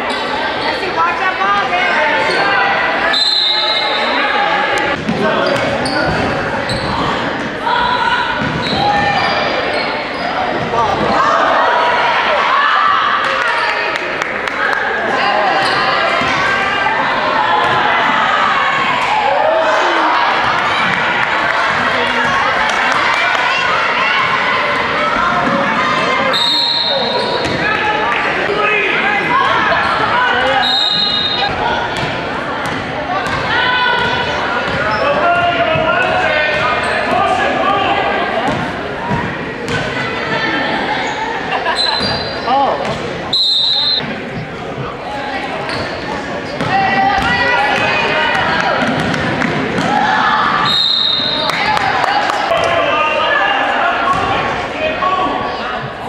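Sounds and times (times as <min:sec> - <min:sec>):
voices of players and spectators: 0:00.0 - 0:56.0
shoe squeals: 0:03.1 - 0:04.3, 0:05.4 - 0:07.2, 0:07.8 - 0:10.7, 0:26.3 - 0:27.6, 0:30.6 - 0:31.5, 0:34.7 - 0:35.5, 0:41.0 - 0:42.7, 0:43.3 - 0:44.1, 0:50.6 - 0:51.5.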